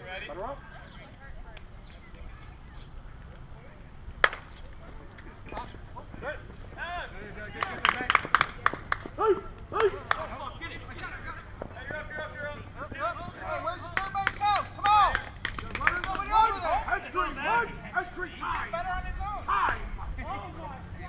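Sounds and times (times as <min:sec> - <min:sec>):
players calling out and chattering: 0:00.0 - 0:21.0
sharp smacks: 0:04.2 - 0:04.6.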